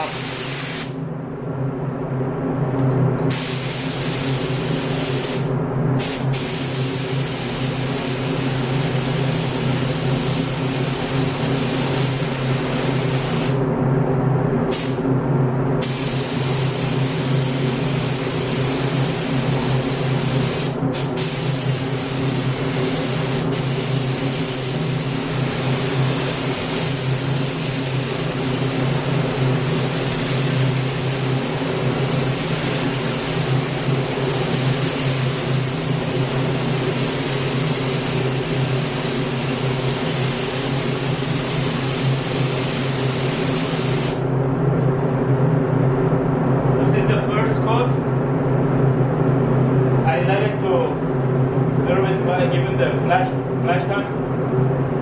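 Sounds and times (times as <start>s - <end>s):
paint spray gun hissing: 0.0s - 1.0s, 3.3s - 13.6s, 15.8s - 44.3s
steady low hum: 0.0s - 55.0s.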